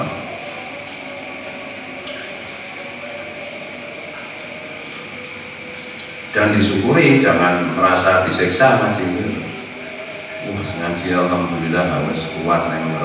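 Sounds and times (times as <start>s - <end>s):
background hiss: 0.0s - 13.0s
faint high-pitched whine: 0.0s - 13.0s.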